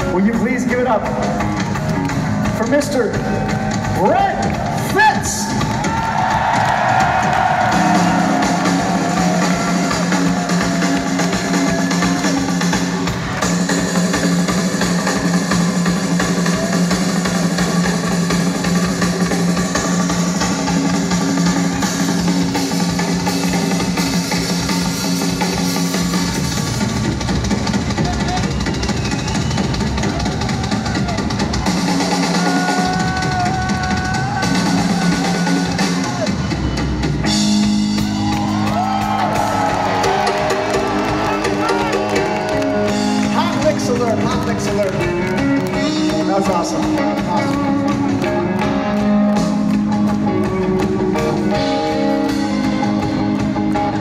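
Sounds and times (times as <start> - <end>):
drum kit: 0.0 - 54.0
live rock band playing: 0.0 - 54.0.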